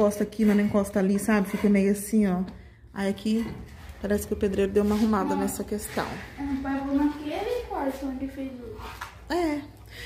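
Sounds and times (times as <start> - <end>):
woman speaking: 0.0 - 9.8.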